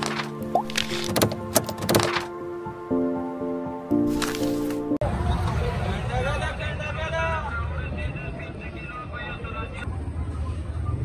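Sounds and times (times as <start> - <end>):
traffic rumble: 4.1 - 11.0.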